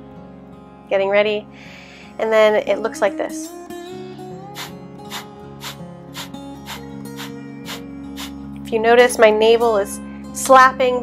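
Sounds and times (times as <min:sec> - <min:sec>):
soft guitar music: 0:00.0 - 0:11.0
forceful nasal exhales: 0:04.6 - 0:08.4.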